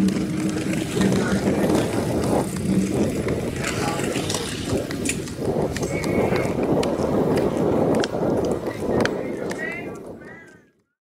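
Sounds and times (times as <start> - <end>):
passers-by: 0.0 - 10.6
traffic rumble: 0.0 - 10.6.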